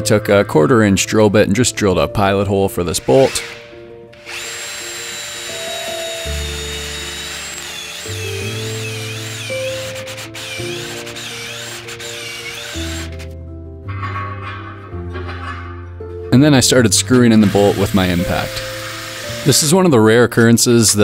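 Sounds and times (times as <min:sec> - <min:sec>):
background music: 0:00.0 - 0:21.0
cordless drill whining: 0:03.1 - 0:13.4, 0:17.2 - 0:19.7.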